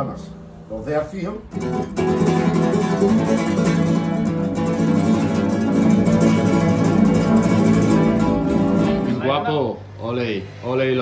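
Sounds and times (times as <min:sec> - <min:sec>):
flamenco guitars strumming: 0:00.0 - 0:09.8.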